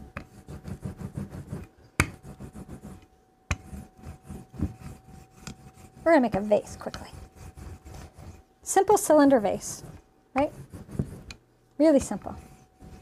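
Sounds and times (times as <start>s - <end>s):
rolling pin rubbing over clay: 0.0s - 13.0s.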